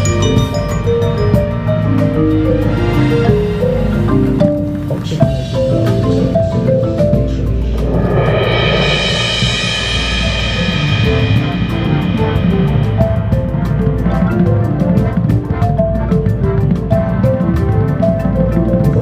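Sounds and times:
marimba notes: 0.0s - 19.0s
sustained low bass: 0.0s - 19.0s
swelling ensemble chord: 0.0s - 19.0s.

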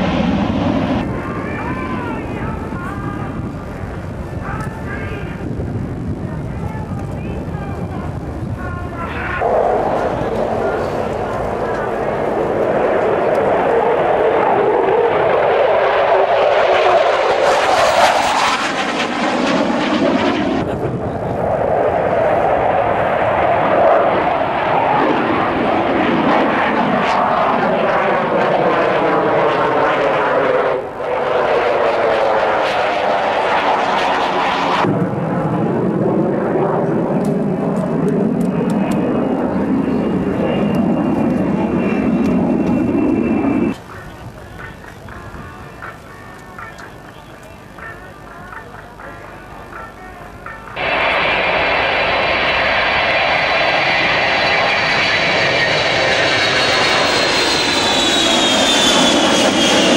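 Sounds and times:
fighter jet engine roar: 0.0s - 46.0s, 49.7s - 59.9s
jet flyover with high whine: 0.0s - 59.9s.

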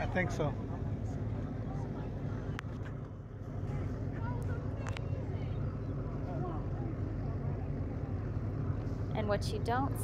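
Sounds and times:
boat engine idling: 0.0s - 10.0s
faint voices: 3.4s - 9.9s.

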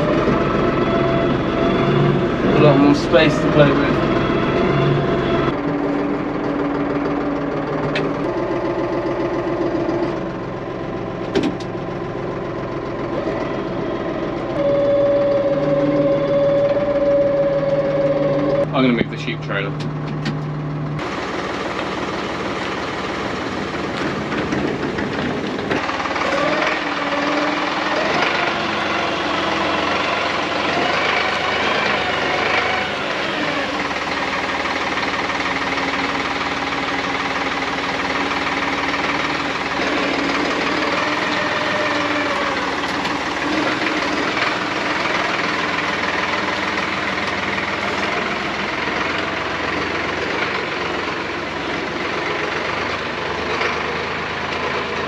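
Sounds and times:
tractor diesel engine revving: 0.0s - 55.0s.

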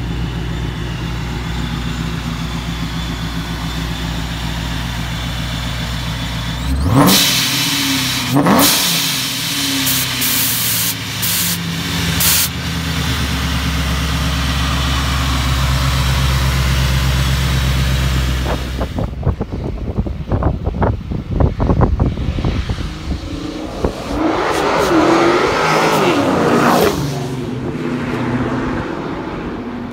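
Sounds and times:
car engine running loud: 0.0s - 29.9s
supercharger whine: 0.0s - 29.9s.

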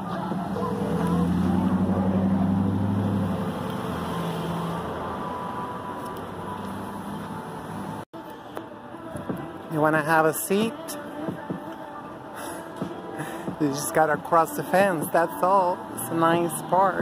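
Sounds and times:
street traffic: 0.0s - 17.0s.

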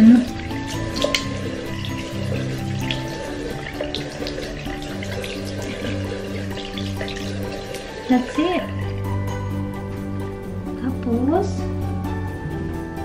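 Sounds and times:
water splashing at a sink: 0.0s - 9.4s
bright background music: 0.0s - 13.0s.

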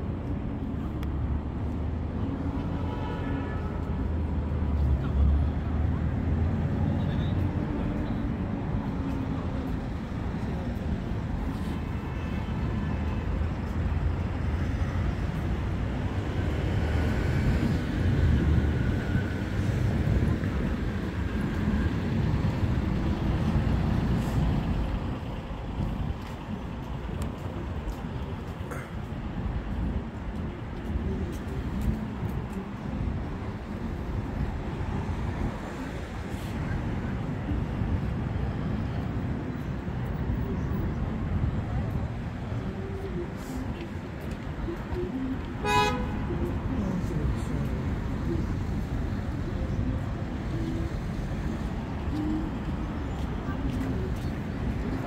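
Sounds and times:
road traffic rumble: 0.0s - 55.0s.

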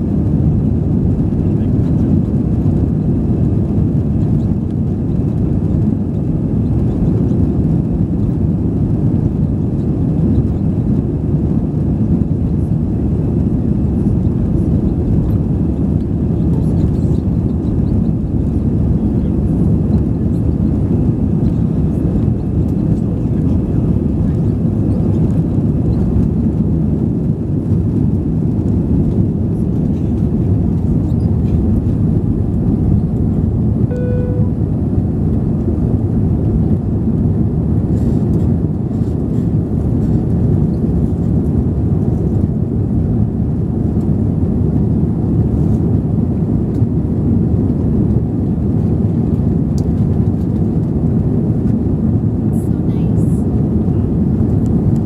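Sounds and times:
electronic beep: 33.9s - 34.6s.

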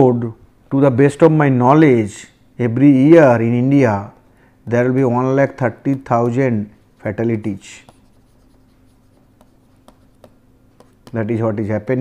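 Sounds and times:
steady low hum: 0.0s - 12.0s
stylus scratching on tablet: 5.8s - 12.0s
light taps on tablet: 9.4s - 11.2s.

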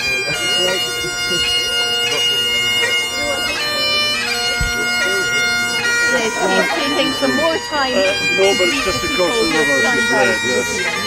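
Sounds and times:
bagpipes playing: 0.0s - 11.0s.

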